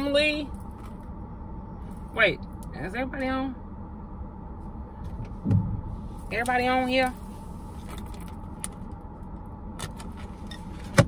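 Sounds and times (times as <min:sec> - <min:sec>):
car cabin rumble: 0:04.5 - 0:11.0.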